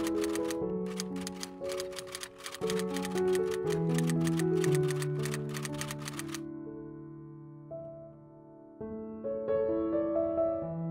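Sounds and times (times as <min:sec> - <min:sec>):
rapid typewriter key clicking: 0:00.0 - 0:06.4
slow held keyboard notes: 0:00.0 - 0:06.4.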